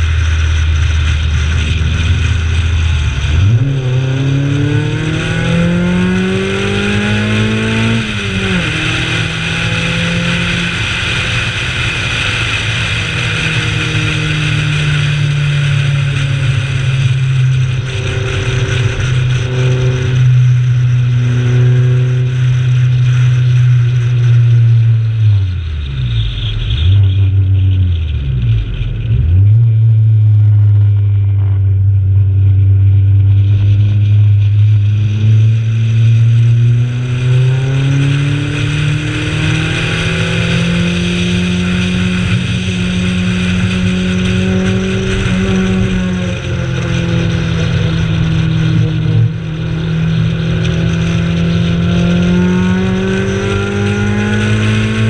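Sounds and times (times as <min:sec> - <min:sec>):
steady rushing noise: 0:00.0 - 0:27.2, 0:27.8 - 0:55.0
car engine revving hard: 0:00.0 - 0:32.4, 0:33.3 - 0:55.0.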